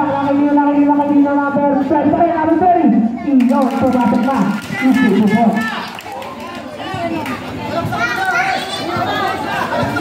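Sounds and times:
crowd shouting and chattering: 0:00.0 - 0:10.0.

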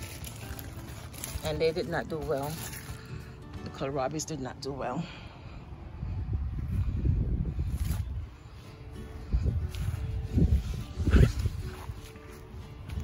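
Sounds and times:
soft background music: 0:00.0 - 0:06.0, 0:07.4 - 0:13.0.

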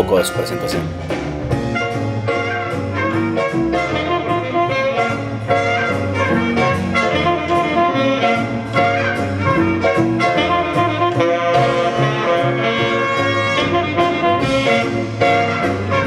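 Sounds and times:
big band playing jazz: 0:00.0 - 0:16.0.

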